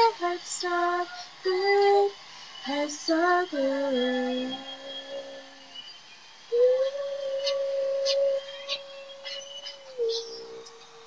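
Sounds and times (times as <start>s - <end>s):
woman singing: 0.0s - 5.8s.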